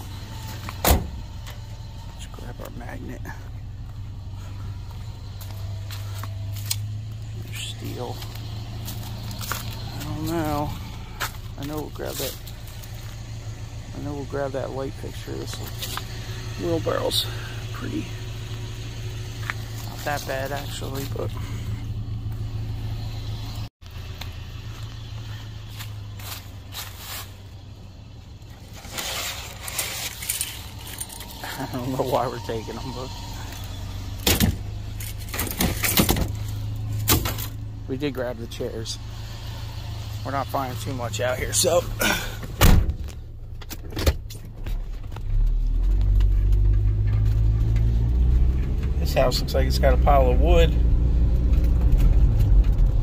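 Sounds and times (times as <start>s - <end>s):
truck engine idling: 0.0s - 50.8s.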